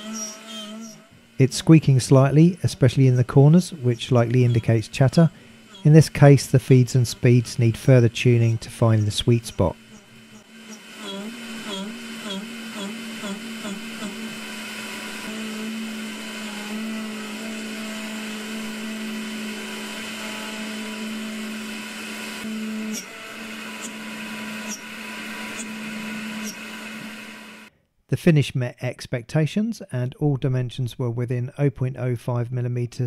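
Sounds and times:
faint high squeaks: 0:00.0 - 0:01.1
milling spindle machining whine: 0:00.0 - 0:27.7.

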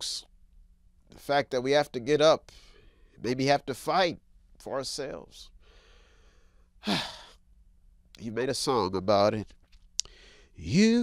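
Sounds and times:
man sighing: 0:06.8 - 0:07.4.

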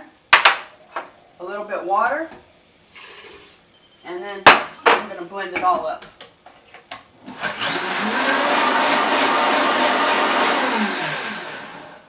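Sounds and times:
blender motor whining: 0:07.3 - 0:12.0.

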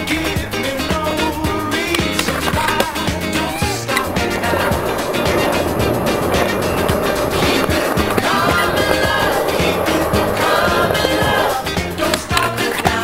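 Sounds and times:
music with steady beat: 0:00.0 - 0:13.0
skateboard wheels rolling on concrete: 0:00.0 - 0:13.0.

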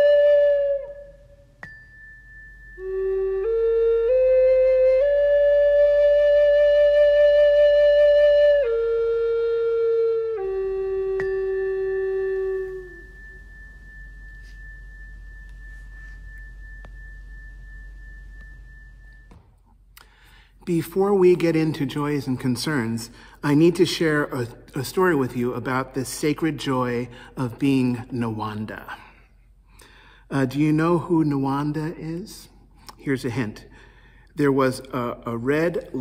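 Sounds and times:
soft flute-like hymn melody: 0:00.0 - 0:19.8.

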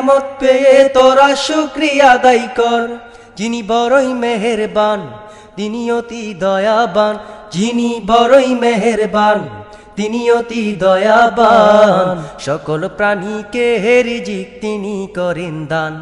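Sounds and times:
person singing: 0:00.0 - 0:16.0.

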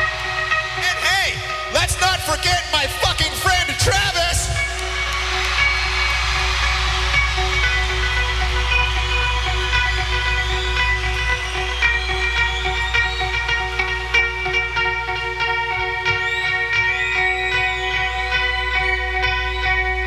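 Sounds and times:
crowd noise: 0:00.0 - 0:20.0
electric guitar riff: 0:00.0 - 0:20.0
steady low drone: 0:04.5 - 0:20.0.

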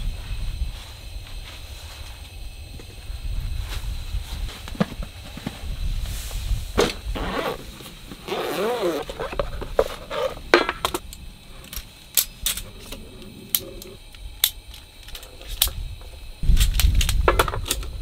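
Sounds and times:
cot squeaky creak: 0:08.2 - 0:09.4
metal stand clicks and rattles: 0:10.5 - 0:15.8.

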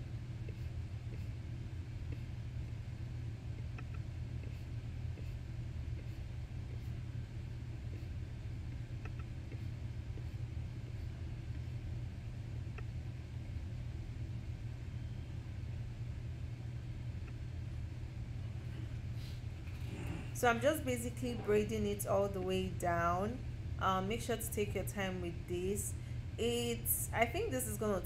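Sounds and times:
low background hum: 0:00.0 - 0:28.0.

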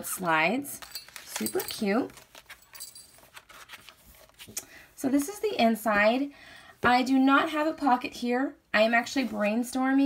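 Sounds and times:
small bells jingling: 0:00.8 - 0:03.3.

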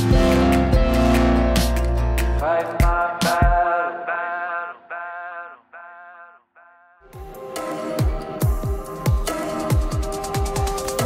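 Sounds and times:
voices singing: 0:02.4 - 0:07.2.

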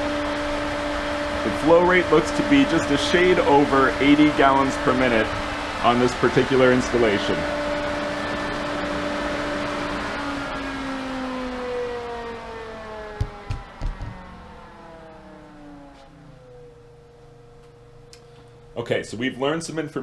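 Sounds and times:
pool pump motor whine: 0:00.0 - 0:20.0
dull thumps: 0:13.2 - 0:14.2.

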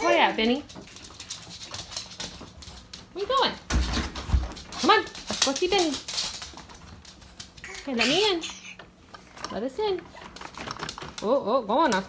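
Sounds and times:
dog claws clicking on wood floor: 0:00.4 - 0:07.7
woman's voice: 0:04.8 - 0:06.0, 0:07.8 - 0:08.6, 0:09.4 - 0:10.1, 0:11.2 - 0:12.0.

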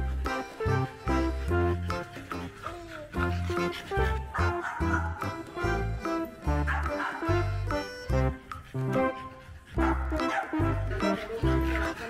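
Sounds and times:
dogs barking: 0:00.0 - 0:12.0.

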